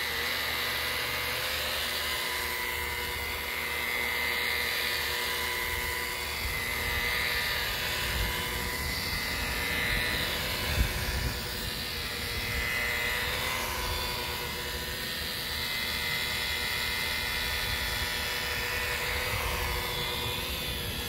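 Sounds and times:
rotary buffer motor whine: 0.0 - 21.0
rush of spinning pad: 1.4 - 21.0.

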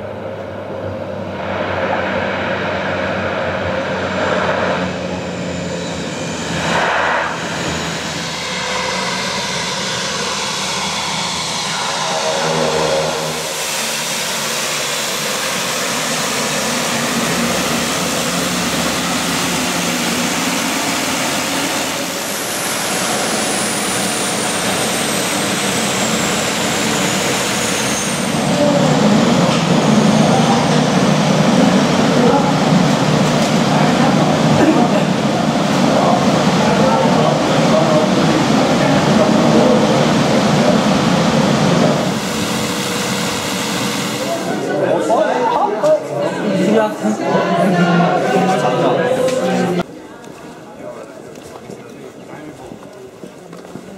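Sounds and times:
propeller aircraft engines running: 0.0 - 49.9
high engine whine: 0.0 - 50.0.

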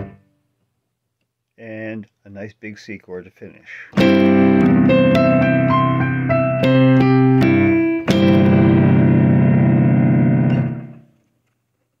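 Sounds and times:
ringing major chord: 4.0 - 11.0
single piano notes: 4.0 - 11.1.

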